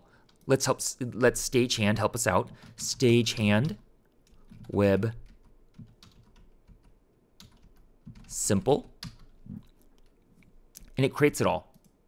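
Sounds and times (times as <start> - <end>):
computer keyboard typing: 2.5 - 9.4.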